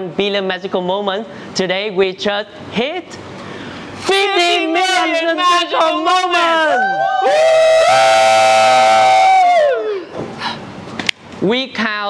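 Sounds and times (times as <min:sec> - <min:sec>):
group of people cheering: 0:04.2 - 0:10.1.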